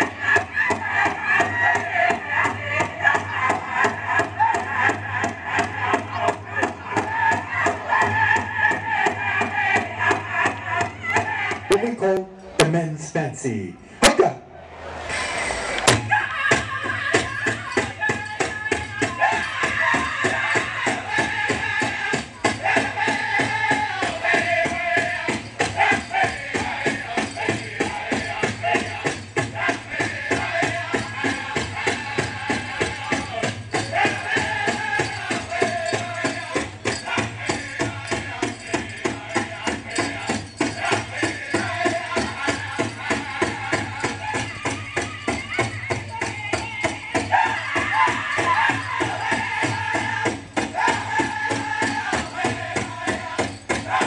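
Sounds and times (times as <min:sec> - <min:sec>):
high-pitched group singing: 0:00.0 - 0:11.8, 0:15.2 - 0:54.0
drum beaten in fast beat: 0:00.0 - 0:13.1, 0:15.9 - 0:54.0
bells jingling: 0:16.1 - 0:54.0.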